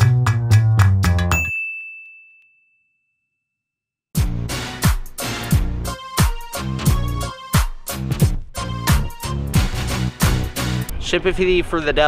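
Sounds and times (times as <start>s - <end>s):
high ding ringing: 1.3s - 3.5s.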